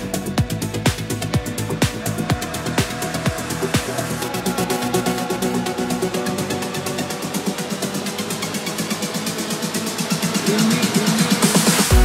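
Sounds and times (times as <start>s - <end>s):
pulsing synth bass line: 0.0s - 12.0s
fast hi-hat ticks: 6.8s - 12.0s.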